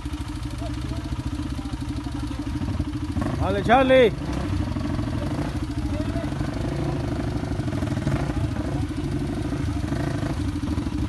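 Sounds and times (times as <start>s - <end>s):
dirt bike engine idling: 0.0s - 11.0s.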